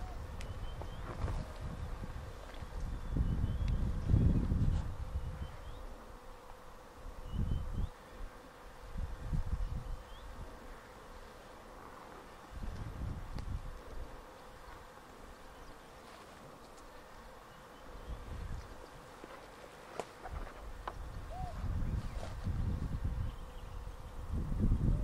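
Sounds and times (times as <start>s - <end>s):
wind rumble on microphone: 0.0s - 6.0s, 7.0s - 10.6s, 12.4s - 14.2s, 18.0s - 19.1s, 20.2s - 25.0s
insect buzzing: 0.0s - 25.0s
footsteps through tall grass: 16.0s - 17.0s.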